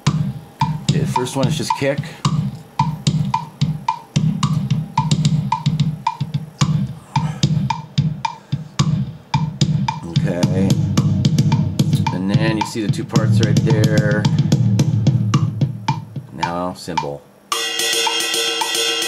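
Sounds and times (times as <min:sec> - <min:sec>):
kick drum pattern: 0:00.0 - 0:18.9.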